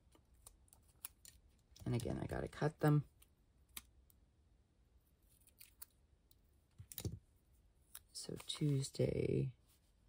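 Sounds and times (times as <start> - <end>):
scissors snipping paper: 0.1 - 2.1.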